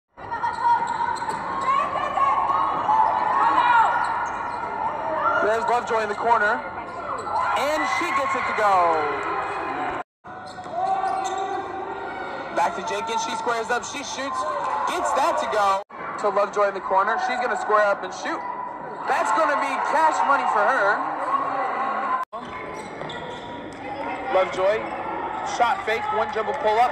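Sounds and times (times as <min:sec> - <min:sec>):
crowd noise: 0:00.1 - 0:26.9
voices from stands: 0:00.2 - 0:26.9.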